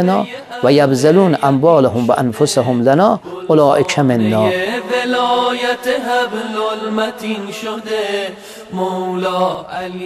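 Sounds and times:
man chanting a slow melody: 0.0 - 4.9.

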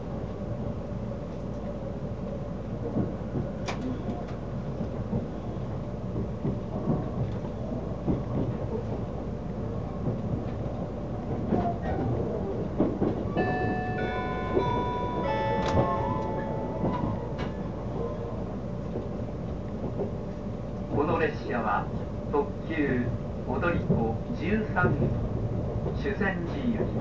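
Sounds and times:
train interior rumble: 0.0 - 27.0.

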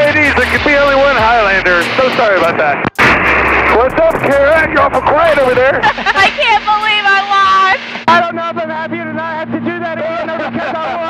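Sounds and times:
man talking: 0.0 - 2.8, 3.7 - 5.9, 8.1 - 11.0
plane engine rushing: 0.0 - 11.0.

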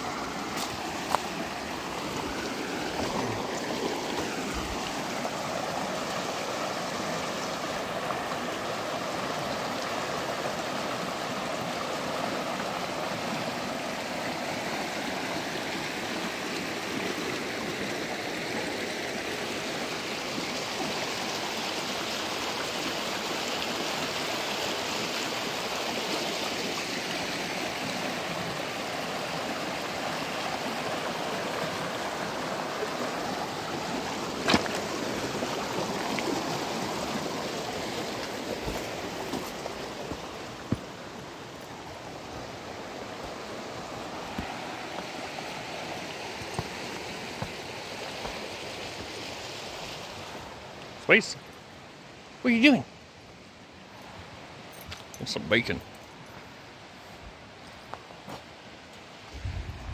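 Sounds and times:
creek rushing over stones: 0.0 - 59.9.

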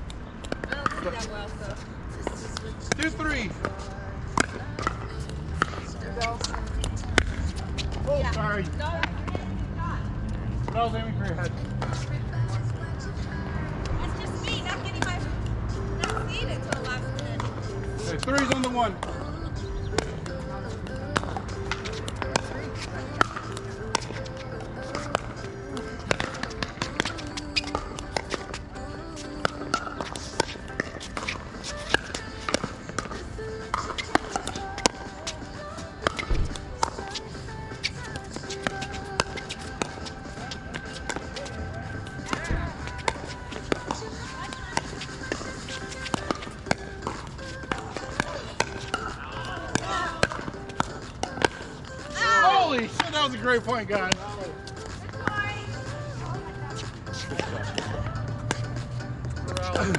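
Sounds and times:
music: 0.4 - 59.9.

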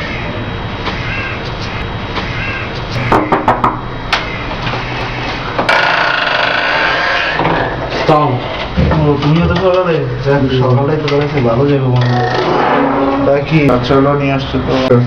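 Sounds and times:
steady low hum: 0.0 - 15.0
door opening noise: 2.9 - 8.9
knocks on wooden door: 3.0 - 3.8.

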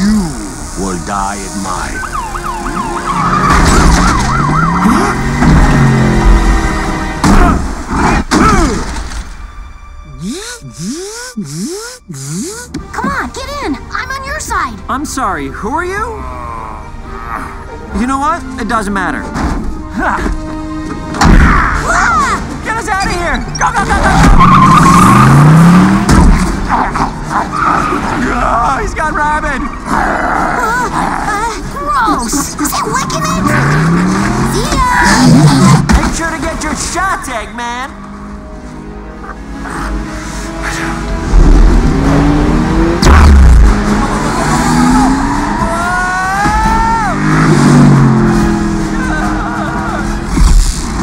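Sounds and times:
siren wailing: 0.0 - 6.8, 10.1 - 12.7, 44.0 - 47.4
low rising tone: 10.0 - 12.8.

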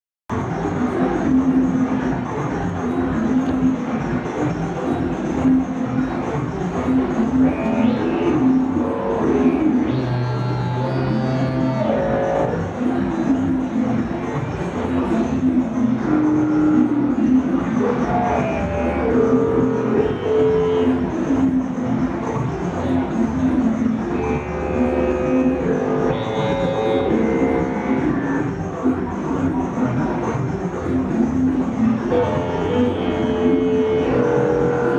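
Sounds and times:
electronic synthesizer drone: 0.3 - 34.9.

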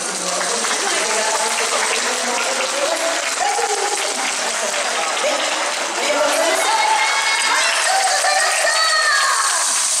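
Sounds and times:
audience applauding: 0.0 - 10.0.

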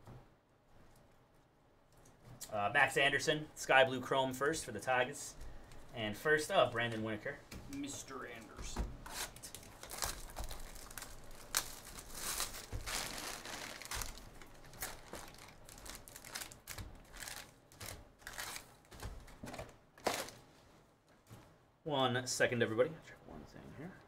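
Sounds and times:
foil packs crinkling and rustling: 9.0 - 20.5.

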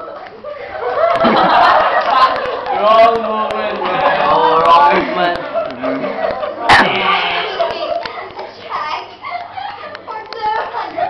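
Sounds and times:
girls' voices: 3.8 - 11.0.

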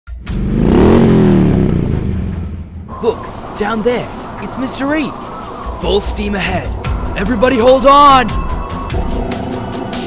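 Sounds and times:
motorcycle engine revving: 0.1 - 2.9.

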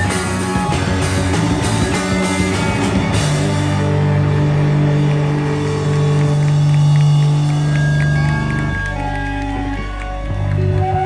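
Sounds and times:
bass and guitar low droning note: 0.0 - 11.0.

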